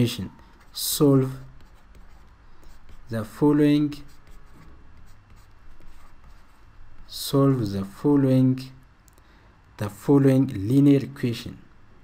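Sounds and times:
low steady hum: 0.0 - 12.0
stylus scratching on tablet: 0.4 - 8.0.

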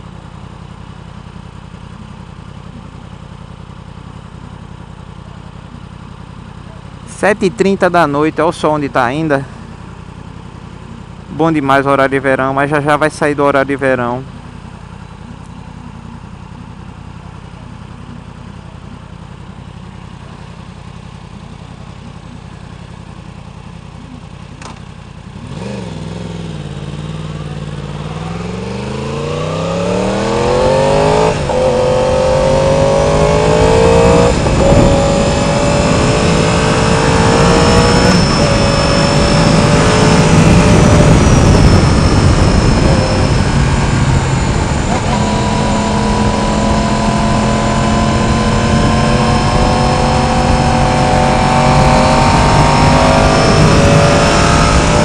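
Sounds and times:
motorcycle engine revving through gears: 14.3 - 55.0
wind rush: 33.4 - 36.6, 38.5 - 55.0.

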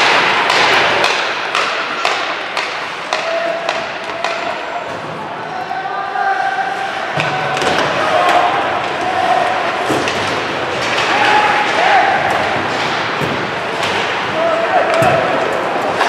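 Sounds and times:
puck hitting boards: 0.0 - 5.2, 7.1 - 16.0
hockey sticks hitting puck: 0.0 - 16.0.

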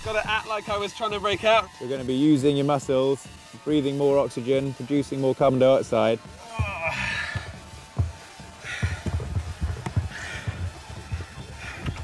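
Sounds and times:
background music: 0.0 - 12.0
man straining and gasping: 6.4 - 7.6
dull thumps: 6.5 - 12.0.

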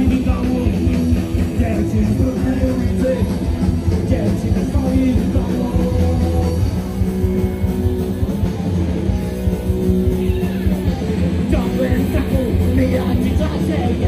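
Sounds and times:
punk rock band playing live: 0.0 - 14.0.

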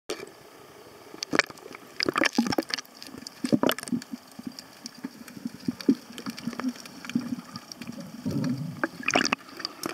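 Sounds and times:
seawater splashing and gurgling: 5.0 - 9.9.

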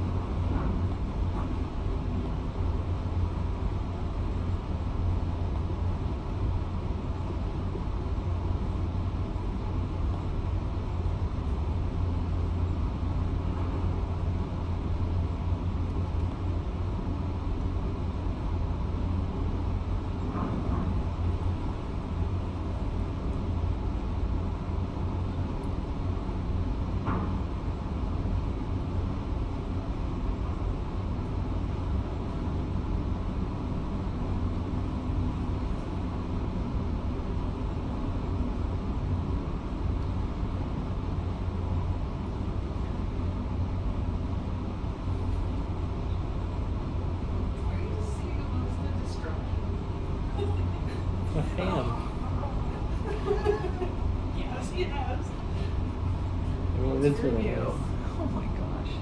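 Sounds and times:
muffled excavator diesel rumble: 0.0 - 59.0.

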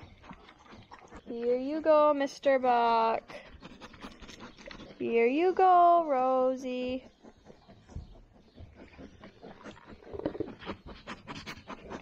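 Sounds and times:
sheep crunching vegetables: 0.0 - 5.6, 6.5 - 12.0.

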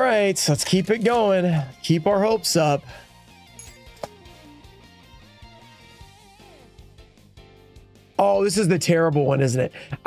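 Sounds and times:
guitar music with low beat: 0.7 - 8.2.

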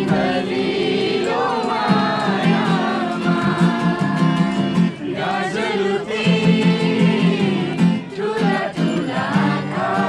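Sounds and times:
acoustic guitar strumming: 0.0 - 10.0
people singing along: 0.0 - 10.0.

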